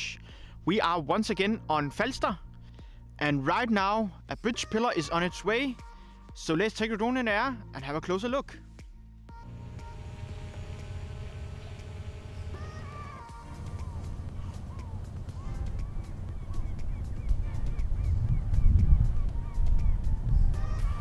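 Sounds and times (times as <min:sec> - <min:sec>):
birds calling: 0:09.5 - 0:20.2
wind rumble on microphone: 0:14.2 - 0:21.0.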